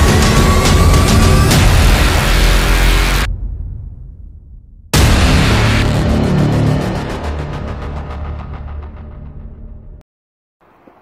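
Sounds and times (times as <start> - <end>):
loud soundtrack music: 0.0 - 4.3, 4.9 - 10.0
low rumble: 1.4 - 10.0.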